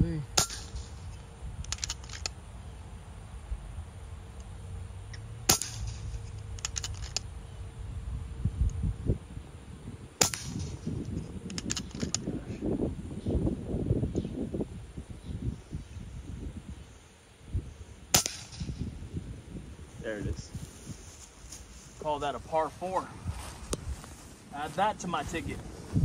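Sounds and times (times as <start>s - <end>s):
air rifle shots: 0.4s - 2.4s, 5.4s - 7.3s, 10.2s - 12.2s, 18.1s - 18.9s.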